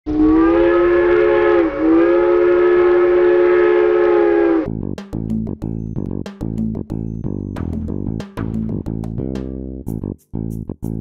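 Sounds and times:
plucked guitar and bass music: 0:04.7 - 0:11.0.

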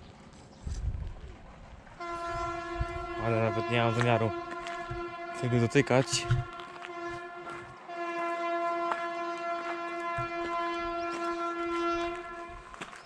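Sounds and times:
train horn: 0:02.0 - 0:13.0.

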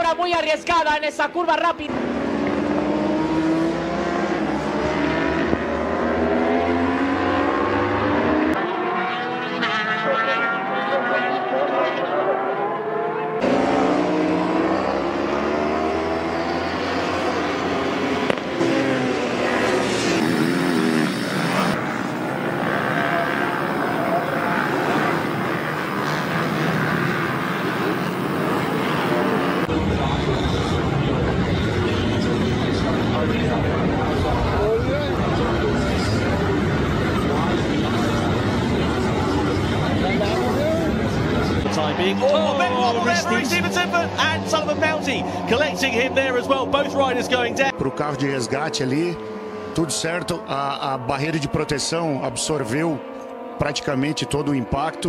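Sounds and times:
racing motorcycle engines revving: 0:00.0 - 0:55.0.

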